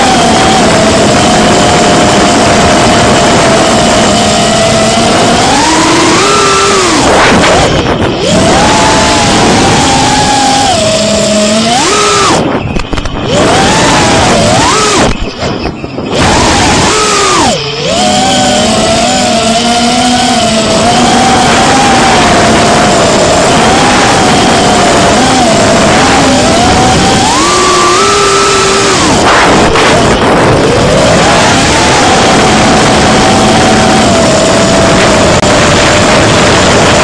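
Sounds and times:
drone propellers whining: 0:00.0 - 0:37.0.

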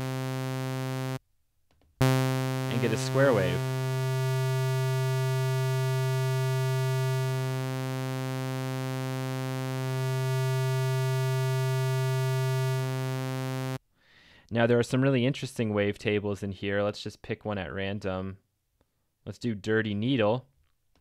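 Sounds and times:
synthesizer low note: 0:00.0 - 0:01.2, 0:02.0 - 0:13.8.

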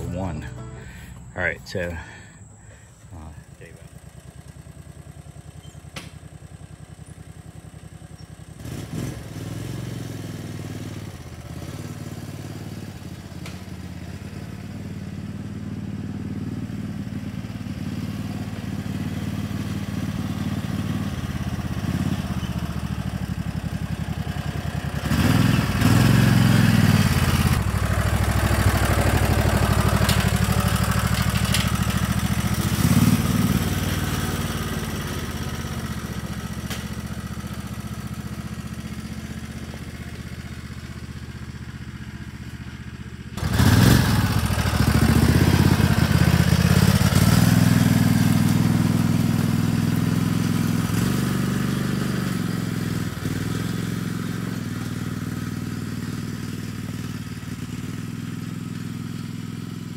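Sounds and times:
utility vehicle engine running: 0:00.0 - 0:59.9.

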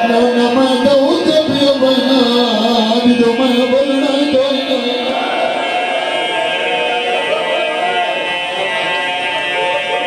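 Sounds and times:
man chanting through loudspeaker: 0:00.0 - 0:10.0.

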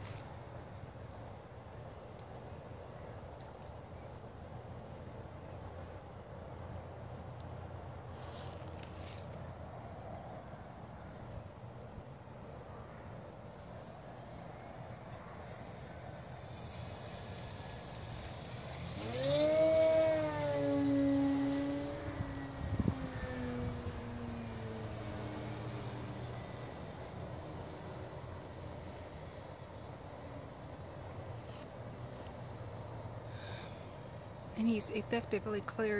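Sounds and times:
model plane motor droning: 0:13.1 - 0:35.7.

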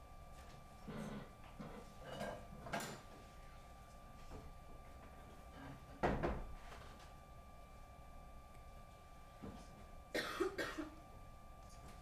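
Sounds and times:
faint electronic whine: 0:00.0 - 0:12.0
person coughing: 0:10.1 - 0:11.0.

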